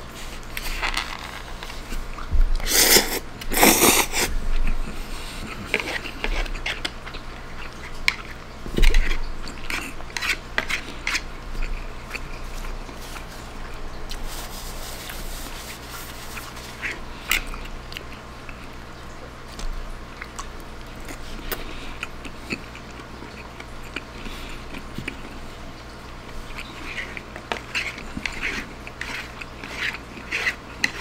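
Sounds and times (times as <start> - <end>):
plastic fork scraping bowl: 0.2 - 2.0, 2.6 - 4.3, 5.4 - 7.0, 8.0 - 13.3, 26.5 - 31.0
chewing: 0.5 - 14.3, 15.0 - 18.8, 19.5 - 25.6, 26.2 - 31.0
noodles slurped: 0.5 - 18.7, 26.4 - 31.0.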